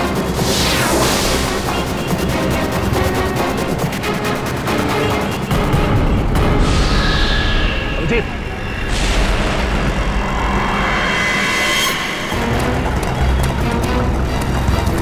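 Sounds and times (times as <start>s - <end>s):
low booming drones: 0.0s - 15.0s
whooshing sweeps: 6.4s - 13.6s.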